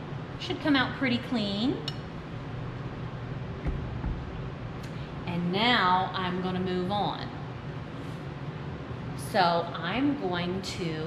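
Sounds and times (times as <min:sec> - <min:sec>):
low room hum: 0:00.0 - 0:11.0
low bump: 0:03.6 - 0:04.5.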